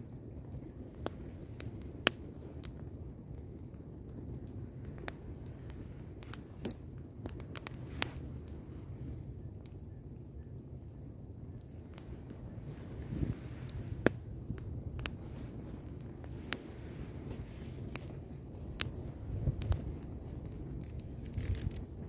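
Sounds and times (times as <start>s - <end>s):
fire crackling and popping: 0.0s - 22.0s
low roar of flames: 0.0s - 22.0s.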